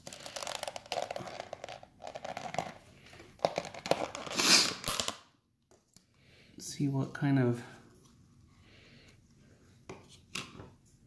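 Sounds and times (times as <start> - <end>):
plastic lid crackling and creaking: 0.0 - 5.2.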